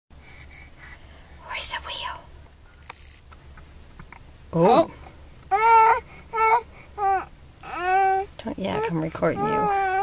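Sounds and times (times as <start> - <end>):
person whispering: 1.4 - 2.3.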